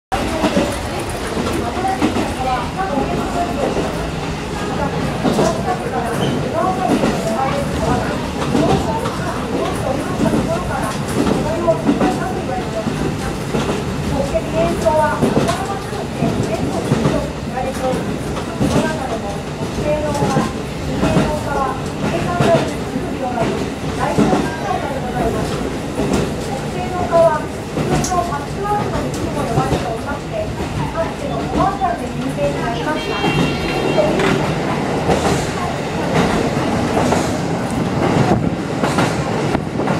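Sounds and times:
train wheels on rails: 0.1s - 39.9s.

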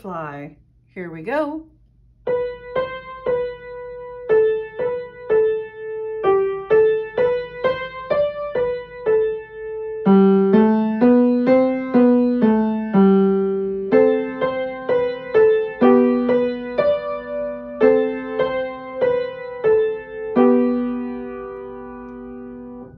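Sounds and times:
upright piano slow melody: 2.2s - 22.9s.

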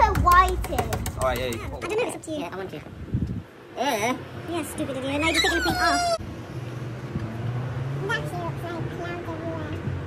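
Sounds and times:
child's voice: 0.0s - 1.1s, 4.5s - 6.2s, 8.0s - 10.0s
road traffic hum: 0.0s - 10.0s.

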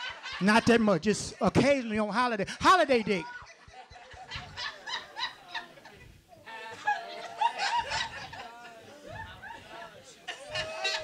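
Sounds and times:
small audience laughing: 2.5s - 11.0s.

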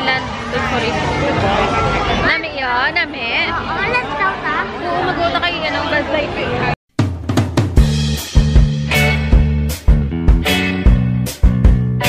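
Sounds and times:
crowd chatter: 0.0s - 6.8s
people talking close by: 0.0s - 6.8s.

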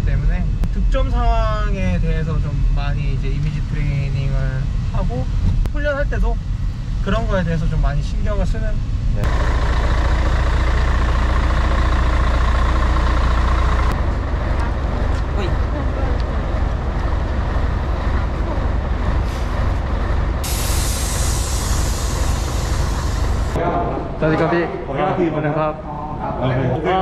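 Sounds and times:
diesel engine idling: 8.7s - 23.6s
air hissing: 19.2s - 23.6s.

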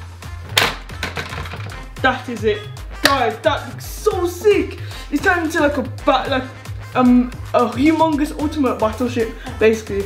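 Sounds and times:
background music with bass line: 0.0s - 10.0s
sharp plastic clack: 0.5s - 1.8s.

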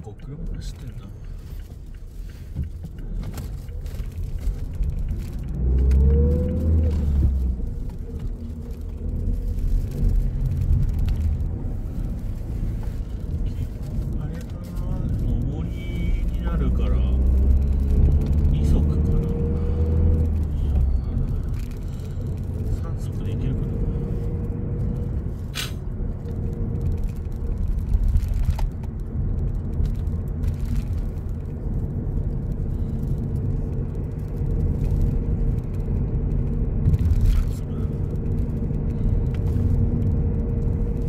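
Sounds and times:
car engine accelerating: 0.0s - 41.0s
road rumble inside car: 0.0s - 41.0s.

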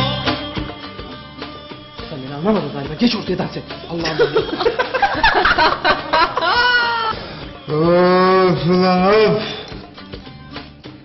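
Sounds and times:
man holding long vocal sounds: 7.6s - 9.7s.

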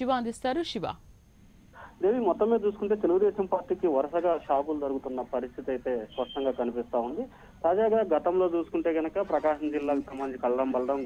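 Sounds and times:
newsreader speaking: 1.8s - 11.0s.

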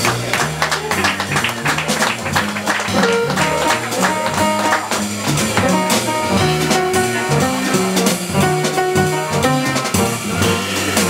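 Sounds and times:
double bass low notes: 0.0s - 11.0s
piano: 0.0s - 11.0s
drum and cymbal strikes: 1.8s - 11.0s.

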